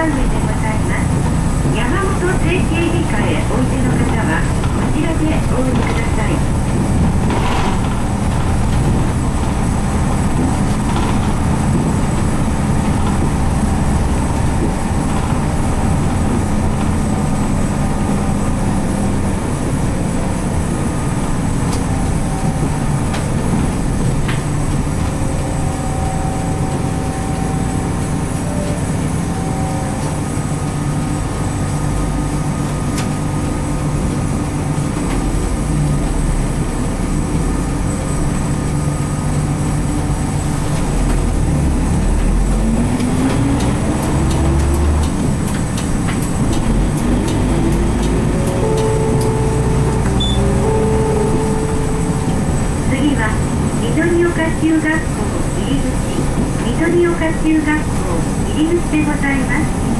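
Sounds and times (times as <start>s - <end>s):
bus diesel engine droning: 0.0s - 59.9s
road and body rattle: 0.0s - 59.9s.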